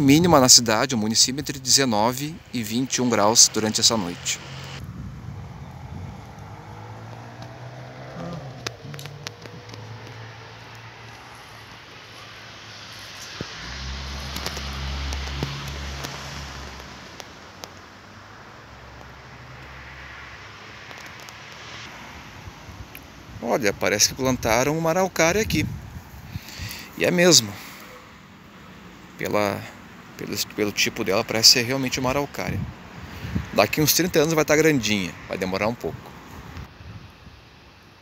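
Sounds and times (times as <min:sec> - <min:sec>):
traffic passing: 0:00.0 - 0:38.0.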